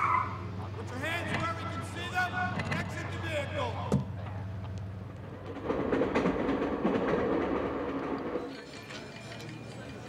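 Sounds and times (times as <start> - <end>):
passenger train rumbling past: 0.4 - 10.0
wheels clacking on rails: 4.0 - 10.0.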